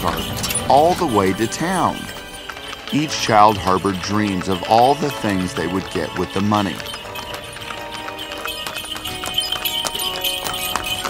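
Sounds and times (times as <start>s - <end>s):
background music with held tones: 0.0s - 11.0s
horse hooves clip-clopping: 0.0s - 11.0s.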